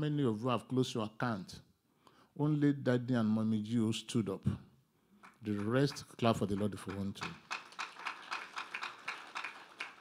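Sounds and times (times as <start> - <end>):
congregation clapping: 5.2 - 10.0.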